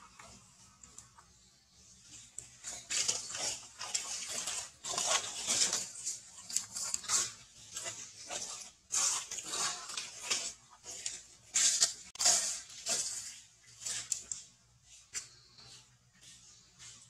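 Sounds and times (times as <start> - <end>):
baby monkey suckling: 0.0 - 13.3.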